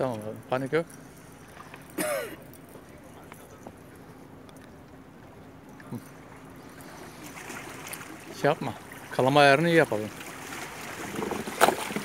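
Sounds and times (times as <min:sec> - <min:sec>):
faint hum: 0:00.0 - 0:12.0
outdoor background noise: 0:00.0 - 0:12.0.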